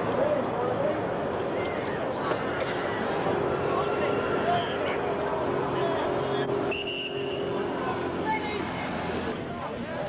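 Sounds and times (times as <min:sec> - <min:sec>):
spectators talking: 0:00.0 - 0:10.0
high whistle: 0:06.7 - 0:07.4.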